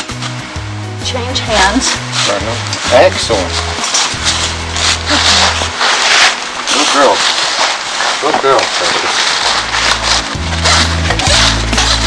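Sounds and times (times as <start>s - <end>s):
rasp scraping hoof: 8.1s - 12.0s.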